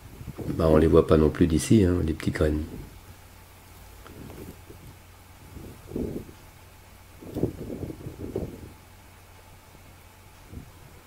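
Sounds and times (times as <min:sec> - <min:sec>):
wind buffeting microphone: 0:00.0 - 0:01.4, 0:04.0 - 0:09.0, 0:10.4 - 0:11.0
faint steady low hum: 0:00.0 - 0:11.0.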